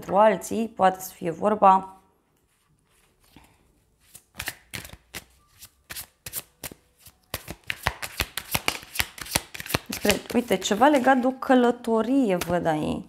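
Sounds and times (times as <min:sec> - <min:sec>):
cards being shuffled: 0:02.4 - 0:11.4.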